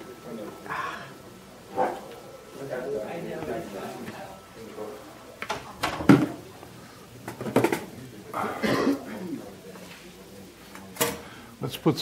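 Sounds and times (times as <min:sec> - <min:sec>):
plastic containers knocking on metal table: 0:07.3 - 0:07.9.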